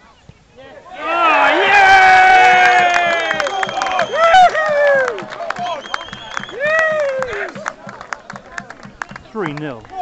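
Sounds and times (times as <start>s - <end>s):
people shouting and cheering: 0.8s - 10.0s.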